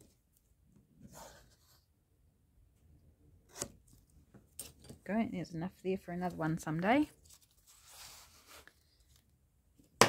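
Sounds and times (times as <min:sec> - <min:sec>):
paper rustling and sliding: 0:07.2 - 0:09.3.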